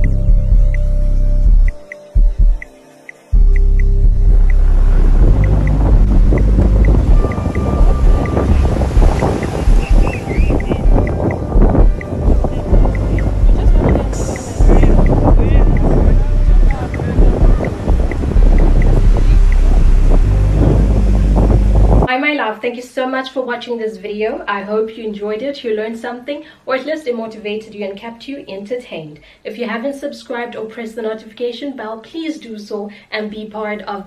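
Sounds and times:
wind buffeting microphone: 3.4s - 22.1s
waves washing onto beach: 4.5s - 21.4s
short high chirps: 9.4s - 10.9s.

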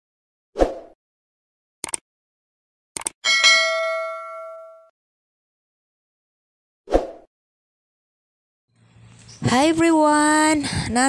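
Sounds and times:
bell ding: 3.2s - 4.9s.

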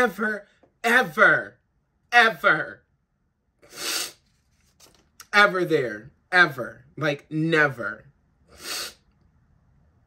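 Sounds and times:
person sniffing while crying: 3.6s - 4.3s, 8.6s - 9.0s.

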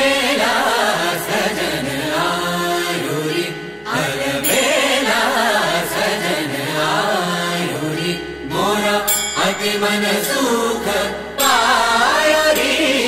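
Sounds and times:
musical accompaniment: 0.0s - 13.0s.

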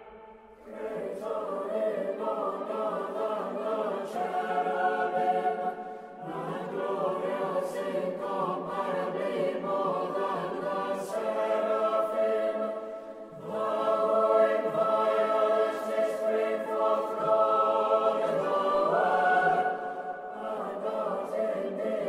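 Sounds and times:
choir singing sustained chords: 0.0s - 22.0s.

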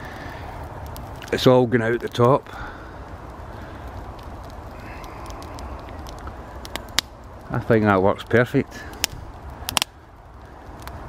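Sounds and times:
wood fire crackling and popping: 0.0s - 11.0s.

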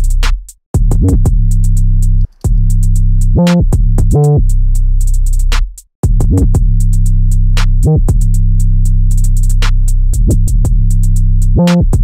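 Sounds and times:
gliding sub-bass: 0.0s - 12.0s
rapid hi-hats: 0.0s - 12.0s.

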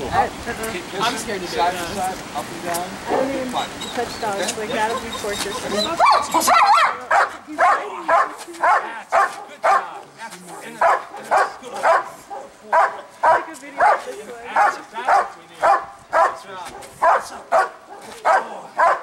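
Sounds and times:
dog barking: 6.0s - 19.0s.

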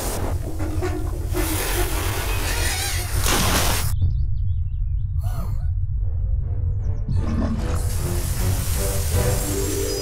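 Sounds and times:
music: 4.0s - 10.0s
rushing water bursting out: 7.8s - 10.0s.

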